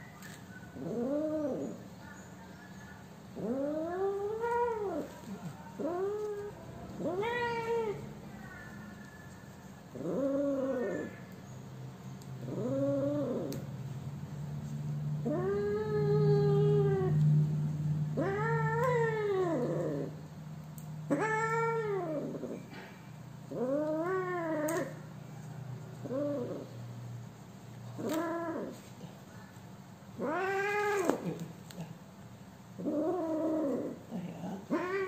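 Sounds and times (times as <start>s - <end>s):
cat meowing: 5.8s - 9.2s, 30.2s - 31.4s, 34.6s - 35.0s.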